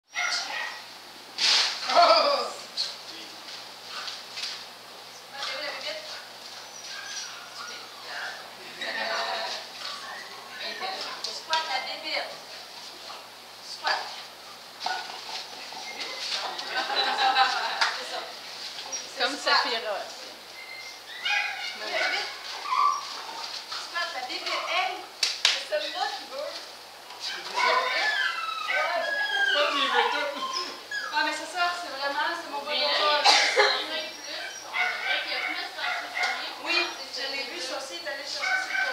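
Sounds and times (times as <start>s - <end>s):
small dog yipping: 0.1s - 0.9s, 6.6s - 8.3s, 20.5s - 23.3s, 27.2s - 31.4s, 34.0s - 37.0s, 38.4s - 38.9s
short hissing noise: 1.4s - 1.8s.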